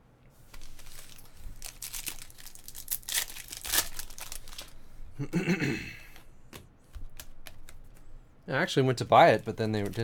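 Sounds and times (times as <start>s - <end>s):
cards flipped through by hand: 6.5s - 8.1s.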